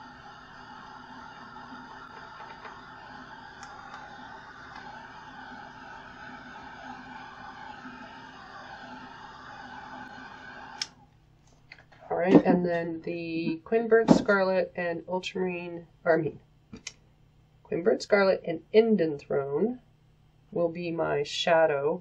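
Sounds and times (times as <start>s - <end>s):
hair dryer whirring: 0.0s - 11.0s.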